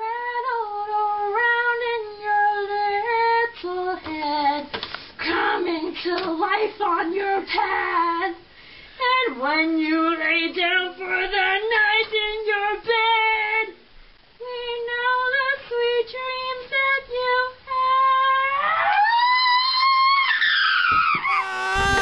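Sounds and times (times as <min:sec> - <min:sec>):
girl singing unaccompanied: 0:00.0 - 0:13.8, 0:14.4 - 0:18.6.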